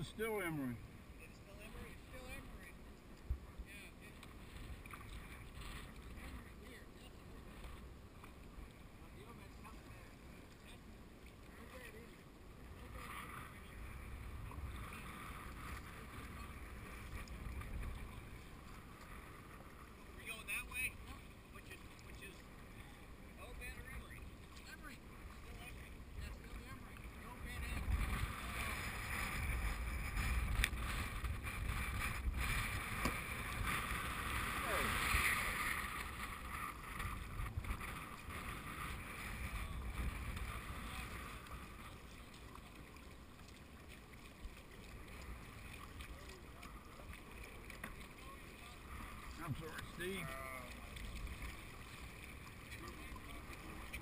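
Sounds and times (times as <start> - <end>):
paddle strokes: 0.0 - 54.0
wind buffeting microphone: 27.5 - 41.7.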